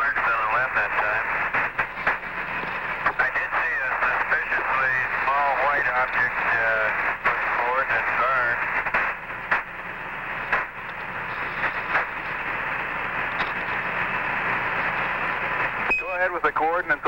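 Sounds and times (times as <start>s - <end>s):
radio static hiss: 0.0s - 17.0s
radio clicks: 0.1s - 12.6s, 13.2s - 13.9s.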